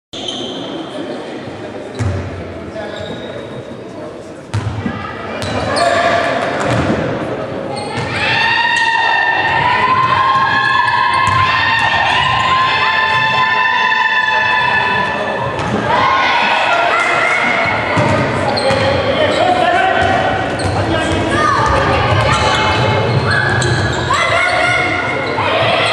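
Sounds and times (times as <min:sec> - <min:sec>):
basketball bouncing in hall: 0:01.9 - 0:02.4, 0:04.5 - 0:13.7, 0:14.6 - 0:16.0, 0:17.2 - 0:25.9
high-pitched shouting voices: 0:21.2 - 0:25.9.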